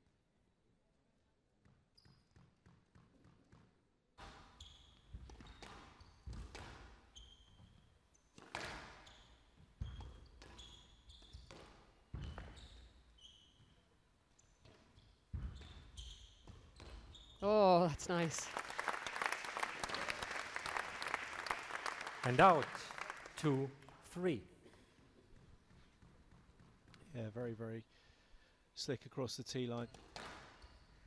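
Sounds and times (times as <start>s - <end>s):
squash ball hitting racquets and walls: 1.6s - 13.8s, 14.4s - 17.4s, 25.3s - 27.1s, 29.9s - 31.0s
shoe squeaks on wooden floor: 4.2s - 17.4s.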